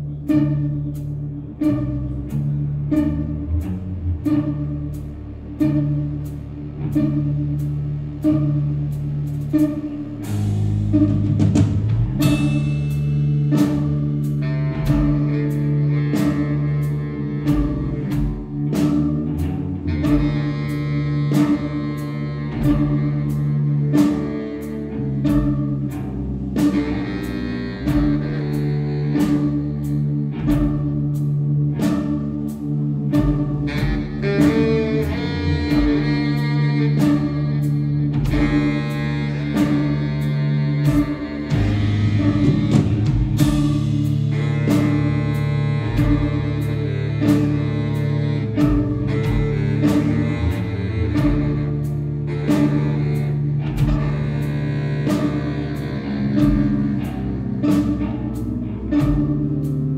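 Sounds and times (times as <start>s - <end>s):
drum kit beat: 0.0s - 59.9s
held bass notes: 0.0s - 59.9s
guitar and keyboard: 52.4s - 59.9s.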